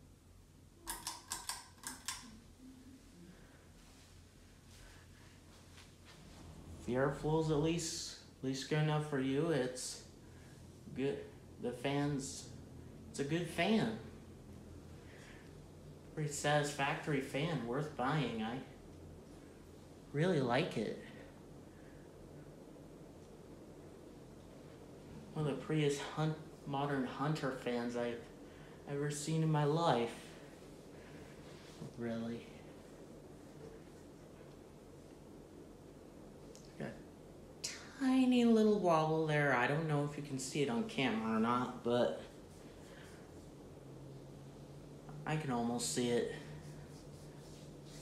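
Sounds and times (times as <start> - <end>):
ceiling fan humming: 0.0 - 48.0.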